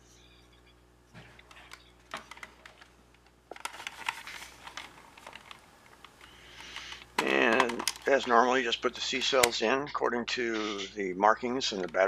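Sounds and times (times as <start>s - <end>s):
plastic parts clicking on table: 3.5s - 8.3s.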